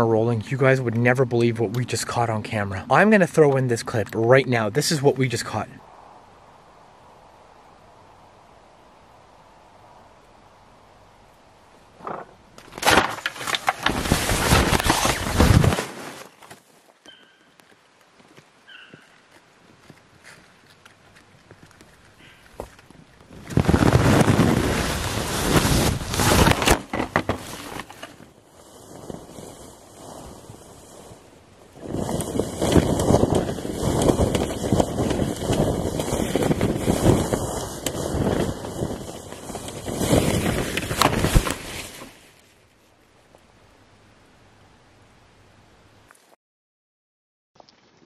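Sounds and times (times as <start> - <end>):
tent fabric rustling on microphone: 12.0 - 17.0, 21.7 - 43.1.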